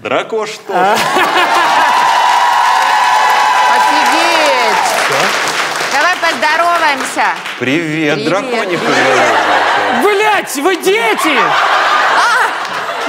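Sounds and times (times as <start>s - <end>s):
excited voices: 0.7s - 6.6s, 8.0s - 13.0s
people clapping: 1.0s - 10.0s, 11.2s - 13.0s.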